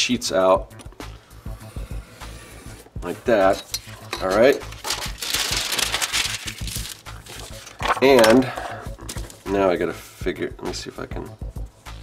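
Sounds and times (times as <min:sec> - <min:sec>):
quiet background music: 0:00.0 - 0:12.0
craft knife scraping along ruler: 0:01.4 - 0:03.0.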